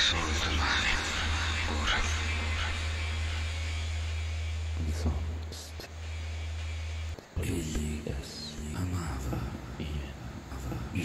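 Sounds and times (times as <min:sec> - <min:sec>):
soft even hiss: 0:00.0 - 0:11.0
steady low hum: 0:00.0 - 0:11.0.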